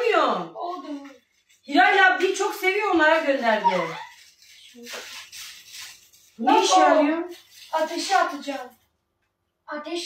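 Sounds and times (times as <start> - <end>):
plastic packaging crinkling: 0.6 - 9.0.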